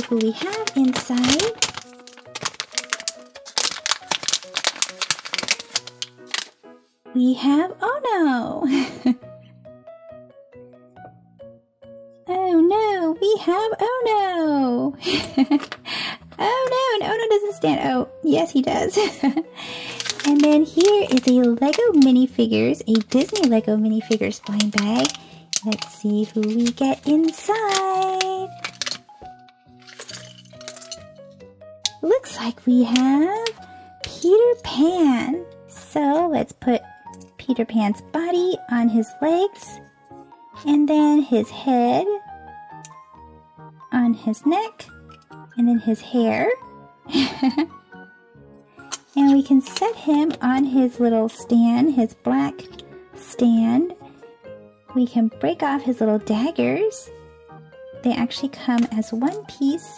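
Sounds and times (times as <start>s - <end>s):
foil bag crinkling: 0.0s - 6.6s, 19.0s - 31.1s, 31.9s - 34.2s
plastic pieces clicking together: 0.0s - 6.6s, 15.3s - 16.8s, 19.6s - 31.1s, 31.9s - 34.2s, 48.8s - 50.0s
soft background music: 0.0s - 59.9s.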